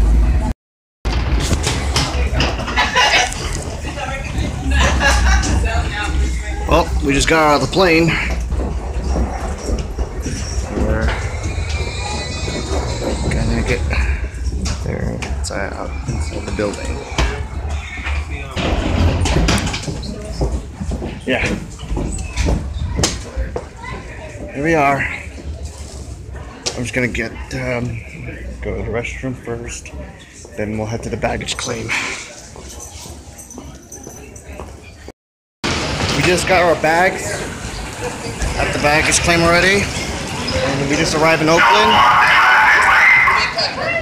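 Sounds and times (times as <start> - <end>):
suitcase wheels rumbling: 1.1 - 26.6
faint voices of people: 1.7 - 35.1, 36.6 - 44.0
footsteps on floor: 8.0 - 13.4, 18.0 - 24.5.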